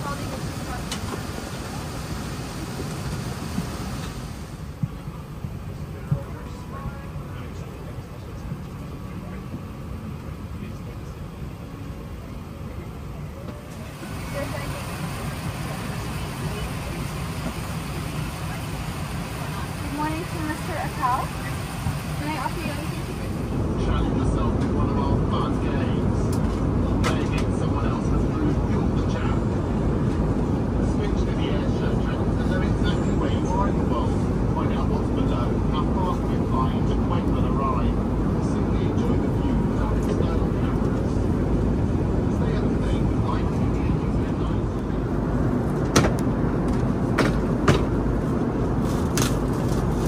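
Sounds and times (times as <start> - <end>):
airliner cabin noise: 0.0 - 50.0
people talking indistinctly: 5.8 - 29.5.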